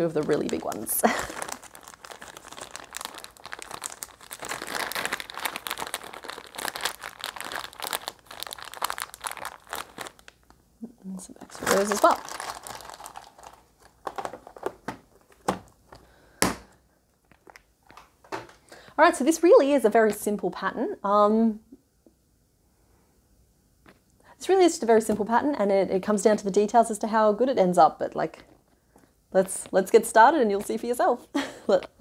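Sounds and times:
plastic packaging crinkling: 0.0 - 10.6, 11.3 - 16.1, 17.1 - 18.6.

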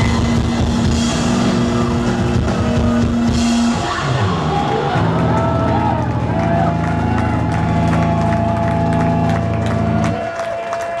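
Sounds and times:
crowd clapping and cheering: 0.0 - 11.0.

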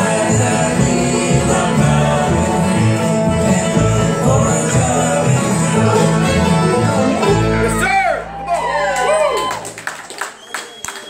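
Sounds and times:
bluegrass band playing: 0.0 - 10.0.

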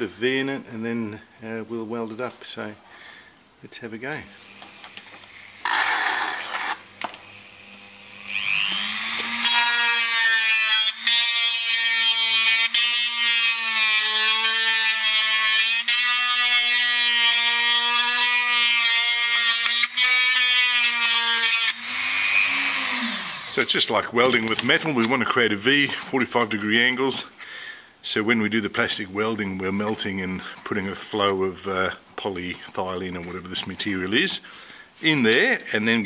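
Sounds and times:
rotary tool grinding plastic: 4.5 - 10.2.

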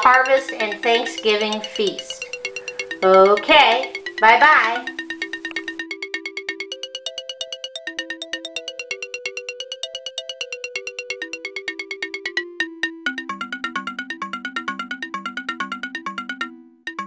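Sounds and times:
electronic synthesizer music: 0.0 - 16.6.

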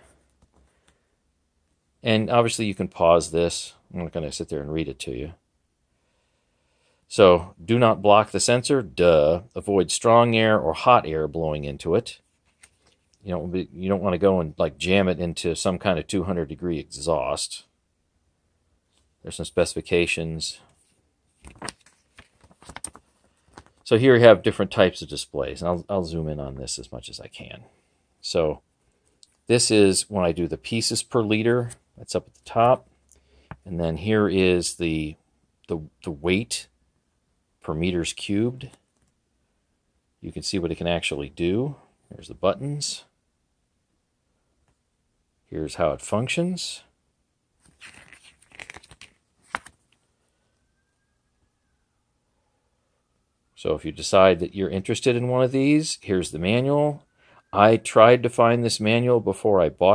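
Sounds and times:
paper pages rustling: 12.2 - 13.1, 20.7 - 23.8, 47.6 - 50.0
paper page snapping: 21.4 - 23.0, 47.6 - 49.8.

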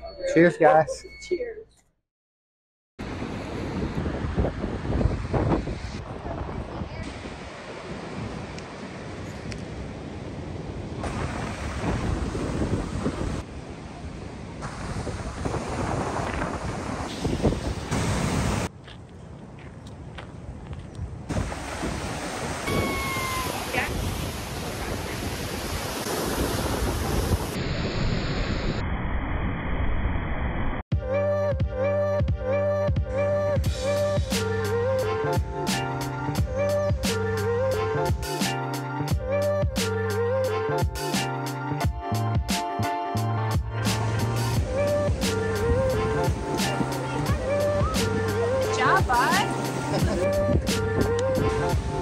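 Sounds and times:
ocean surf on beach: 3.0 - 18.7, 21.3 - 28.8, 44.0 - 52.0
wind buffeting microphone: 3.0 - 27.8, 44.6 - 52.0.

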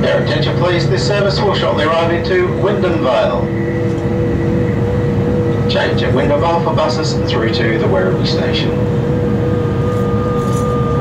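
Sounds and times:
faint higher whine: 0.0 - 11.0
steady train whine: 0.0 - 11.0
train rumble: 0.0 - 11.0.

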